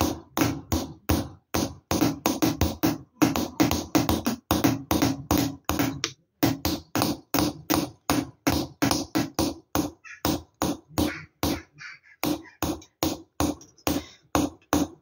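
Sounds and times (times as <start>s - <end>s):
hammer tapping chisel on copper: 0.0s - 15.0s.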